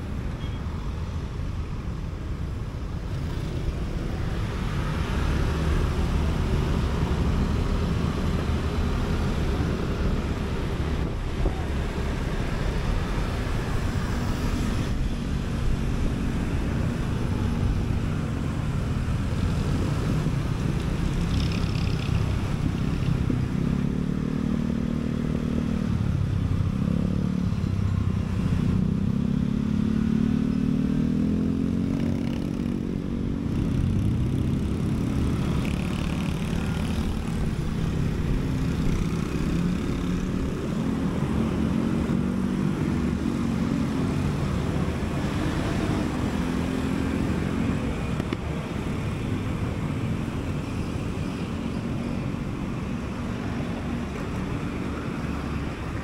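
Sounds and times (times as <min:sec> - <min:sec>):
road and wind noise: 0:00.0 - 0:56.0.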